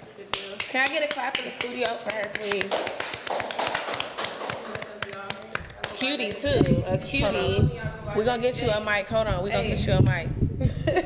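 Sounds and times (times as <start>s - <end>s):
people clapping: 0.3s - 6.8s
voices: 4.2s - 10.4s.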